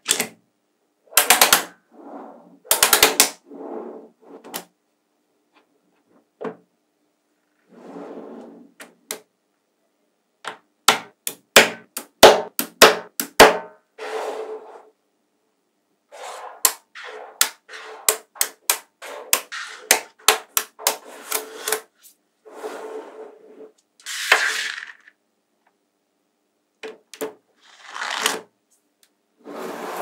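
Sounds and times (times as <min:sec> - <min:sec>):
magnetic balls clicking together: 0:02.7 - 0:03.4
balls rattling and sliding: 0:16.1 - 0:25.2.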